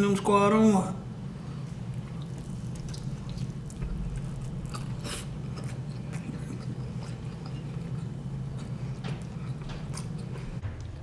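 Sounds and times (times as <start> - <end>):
steady low hum: 0.0 - 11.0
chewing with wet mouth smacks: 1.9 - 10.6.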